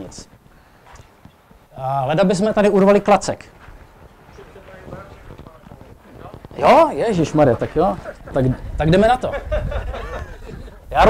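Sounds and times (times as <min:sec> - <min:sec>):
footsteps on cobblestones: 0:03.4 - 0:08.6.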